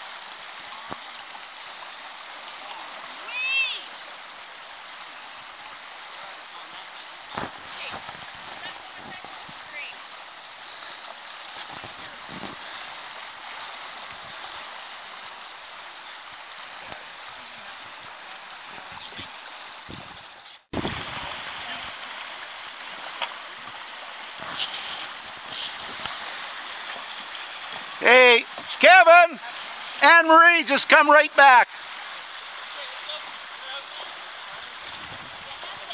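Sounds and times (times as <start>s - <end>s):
river water rushing: 0.0s - 35.9s.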